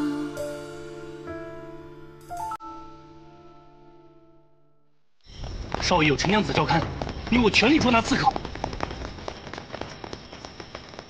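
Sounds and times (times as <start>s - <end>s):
torches crackling and popping: 5.2s - 11.0s.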